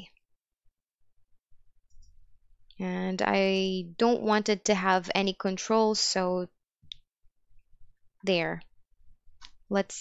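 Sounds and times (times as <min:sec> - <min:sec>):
woman speaking: 0:02.7 - 0:06.6, 0:08.2 - 0:08.7, 0:09.7 - 0:10.0.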